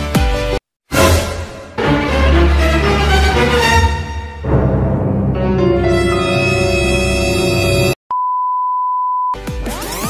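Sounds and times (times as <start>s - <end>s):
background music: 0.0s - 8.0s.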